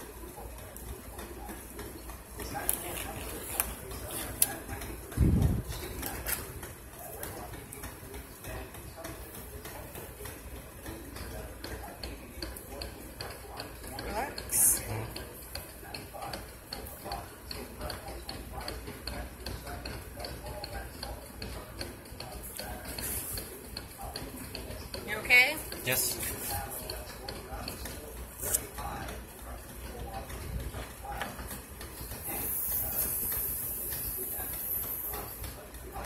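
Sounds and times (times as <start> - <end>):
faint voices talking: 0.0 - 36.0.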